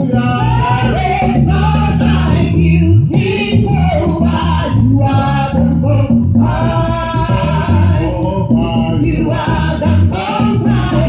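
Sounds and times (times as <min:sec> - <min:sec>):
conga drums: 0:00.0 - 0:11.0
repeating low bass line: 0:00.0 - 0:11.0
voices singing gospel: 0:00.0 - 0:11.0.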